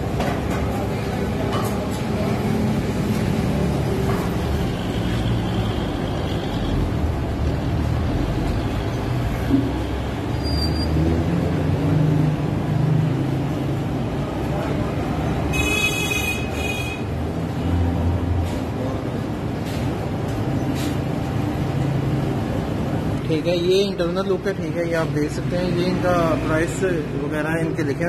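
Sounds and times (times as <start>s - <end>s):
road traffic engine rumble: 0.0s - 28.0s.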